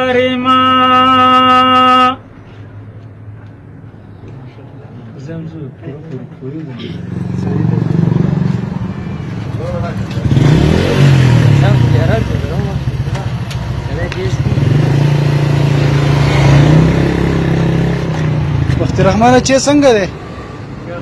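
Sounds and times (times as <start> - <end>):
motorcycle engine running: 7.1 - 19.2.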